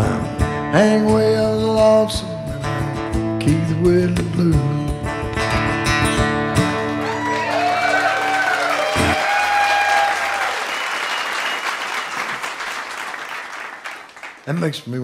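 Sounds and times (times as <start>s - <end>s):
audience applauding and cheering: 6.8s - 14.6s.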